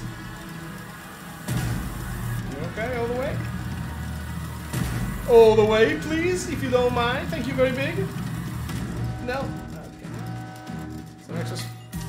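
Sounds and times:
steady low drone: 0:00.0 - 0:12.0
slot game music chord: 0:05.0 - 0:12.0.

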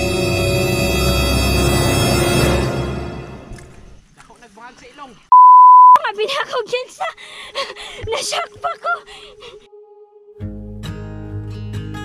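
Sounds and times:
high beep tone: 0:05.3 - 0:06.0.

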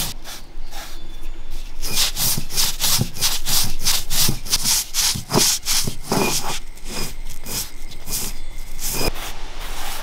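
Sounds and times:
stone scraping on stone: 0:01.8 - 0:10.0.

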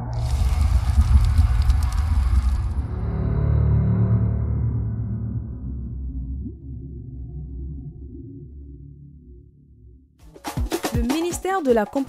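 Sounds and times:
crackling fire-like burst: 0:00.0 - 0:03.1
deep rumble: 0:00.0 - 0:10.2
dark music bed: 0:02.3 - 0:11.2.

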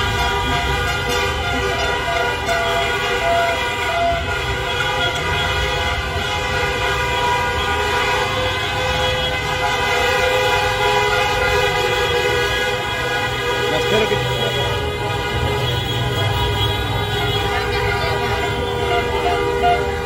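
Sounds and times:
vehicle horns blaring: 0:00.0 - 0:20.0.

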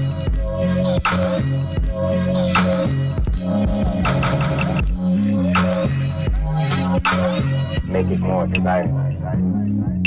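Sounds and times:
deep bass line: 0:00.0 - 0:10.0.

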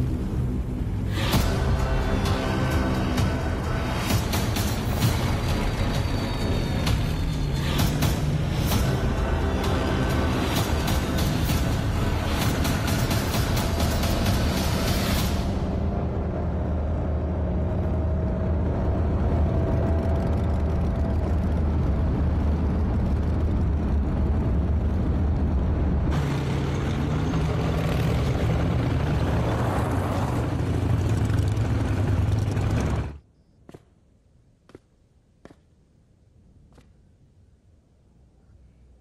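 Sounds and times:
vehicle engines droning: 0:00.0 - 0:33.2.

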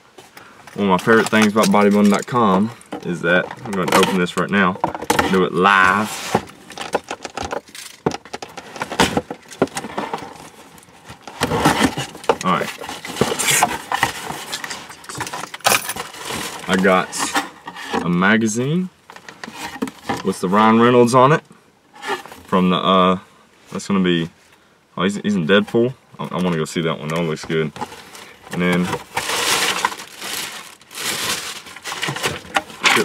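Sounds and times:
paper and packaging crinkling: 0:00.8 - 0:17.4, 0:27.4 - 0:33.0
cardboard box rustling and rattling: 0:00.9 - 0:18.0, 0:27.4 - 0:33.0.

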